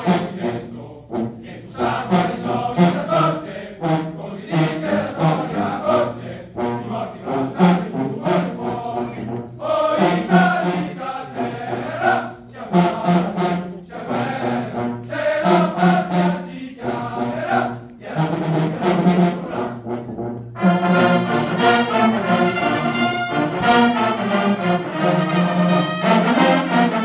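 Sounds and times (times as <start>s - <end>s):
chorus singing a marching hymn: 0.0s - 27.0s.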